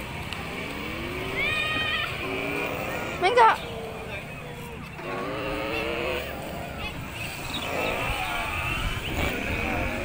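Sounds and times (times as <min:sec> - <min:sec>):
high-pitched voices calling out: 0:00.5 - 0:10.0.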